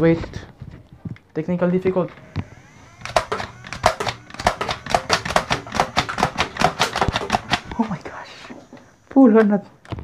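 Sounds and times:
rapid clicks of blaster firing: 2.1 - 8.1
blaster motor whine: 2.1 - 9.4.

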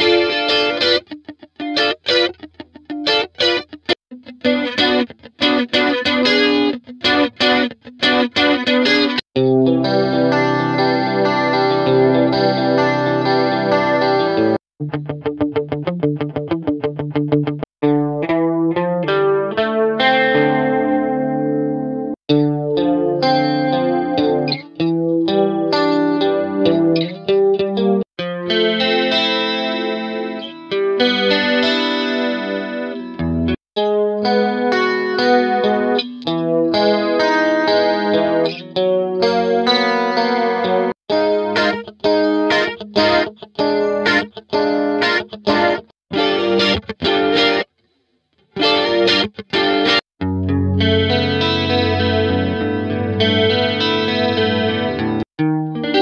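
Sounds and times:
strummed guitar chord patterns: 0.0 - 47.7, 48.6 - 56.0.

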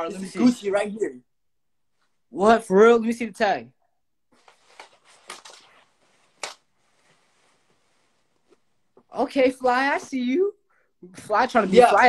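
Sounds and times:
fabric rustling: 4.3 - 10.1.

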